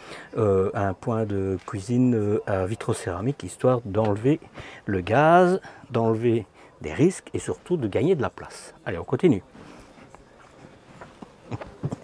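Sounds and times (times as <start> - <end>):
soft footsteps: 9.4 - 12.0.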